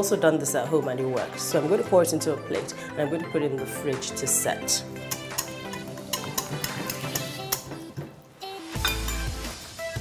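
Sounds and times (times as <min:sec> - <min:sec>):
background music: 0:00.0 - 0:10.0
whisk clinking on glass: 0:08.8 - 0:09.3.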